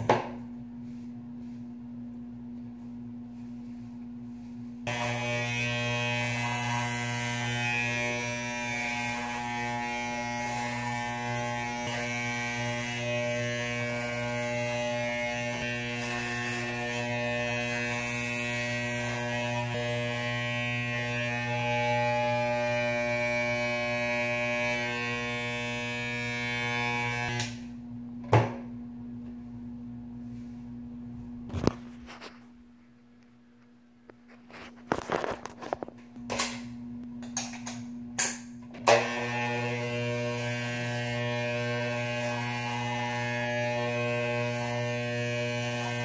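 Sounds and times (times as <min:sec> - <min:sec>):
electric hair clippers buzzing: 0:04.9 - 0:27.8, 0:37.3 - 0:46.0.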